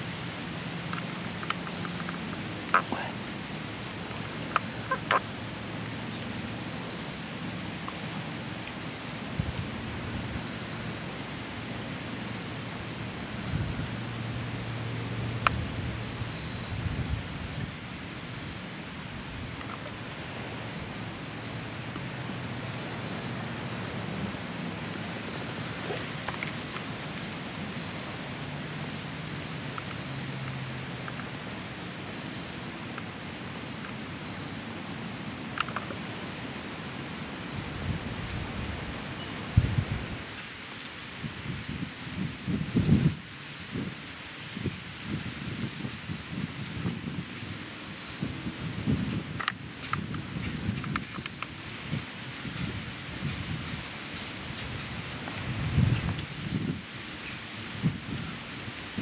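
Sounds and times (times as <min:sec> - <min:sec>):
steady hiss: 0:00.0 - 0:59.0
wind buffeting microphone: 0:09.2 - 0:27.6, 0:37.5 - 0:40.4, 0:41.1 - 0:59.0.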